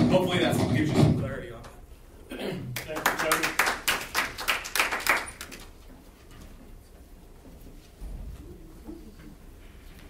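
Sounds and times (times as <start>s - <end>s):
people clapping: 2.7s - 5.8s.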